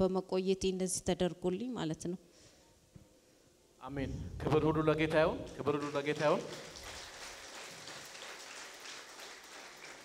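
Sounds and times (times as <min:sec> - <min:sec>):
large hall crowd background noise: 0:04.7 - 0:10.0.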